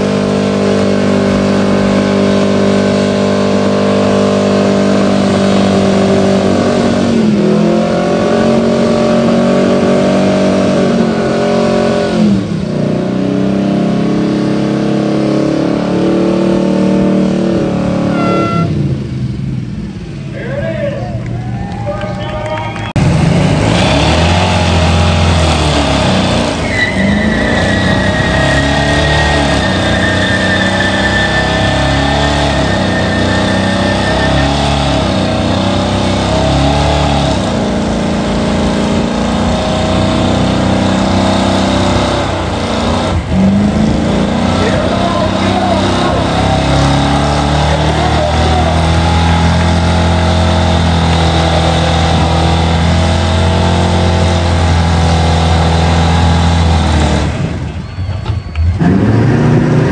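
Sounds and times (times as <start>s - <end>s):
engine revving hard: 0.0s - 18.7s, 22.9s - 57.7s, 58.8s - 59.9s
thin high tone: 18.1s - 18.8s.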